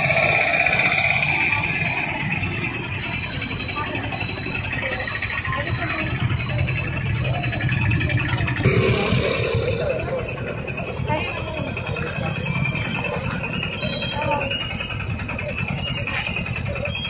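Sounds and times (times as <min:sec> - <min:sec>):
motorbike engines idling: 0:00.0 - 0:17.0
people talking: 0:00.0 - 0:17.0
street traffic rumbling: 0:00.0 - 0:17.0.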